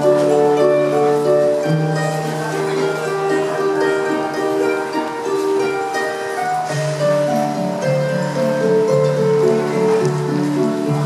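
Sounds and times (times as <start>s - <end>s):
harp plucked notes: 0.0s - 11.0s.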